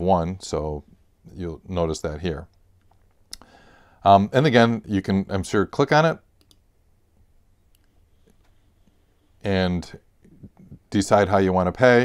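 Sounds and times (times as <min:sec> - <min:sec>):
faint sharp clicks: 0:02.5 - 0:03.5, 0:06.4 - 0:06.7.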